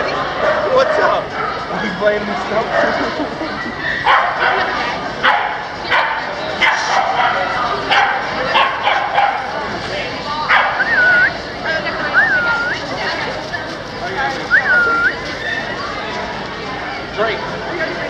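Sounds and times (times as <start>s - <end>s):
people chattering: 0.0s - 18.0s
dog barking: 0.4s - 1.9s, 4.0s - 9.6s, 10.5s - 10.9s.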